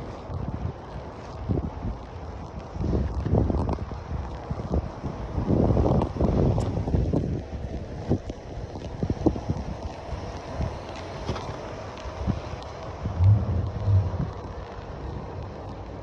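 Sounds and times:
wind buffeting microphone: 12.2s - 16.0s.

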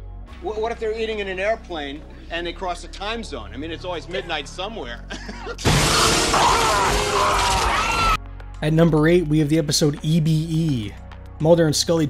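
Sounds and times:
person laughing: 5.1s - 5.7s
crash with shattering: 5.6s - 8.1s
shrill sliding cries: 6.1s - 8.2s.

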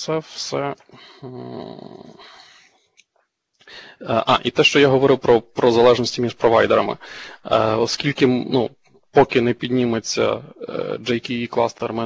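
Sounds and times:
man's drawn-out hesitation sound: 0.0s - 2.5s, 3.8s - 12.0s.

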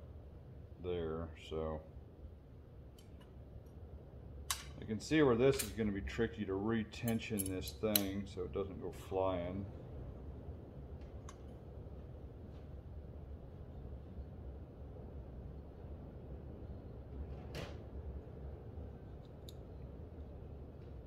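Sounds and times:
steady low hum: 0.0s - 21.0s
small steel parts clicking: 7.0s - 8.2s.

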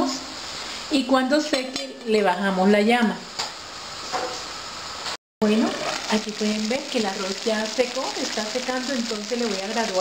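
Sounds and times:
low hiss from covered pot: 5.4s - 10.0s.

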